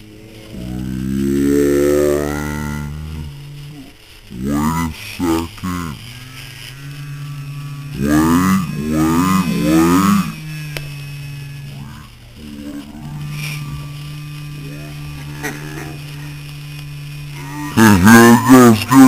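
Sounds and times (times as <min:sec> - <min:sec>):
person humming or groaning: 0:00.0 - 0:19.0
swooping vocal sounds: 0:00.0 - 0:19.0.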